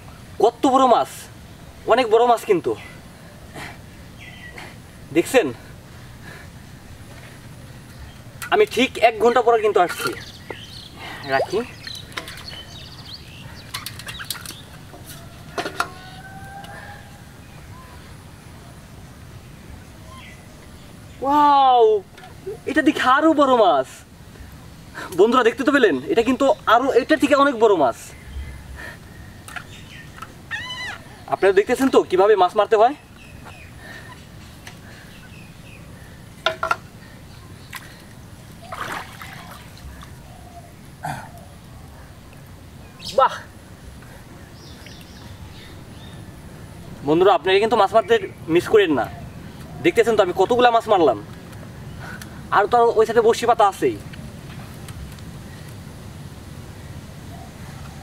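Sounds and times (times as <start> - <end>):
water splash: 38.6 - 39.8
water trickling into basin: 38.6 - 40.1.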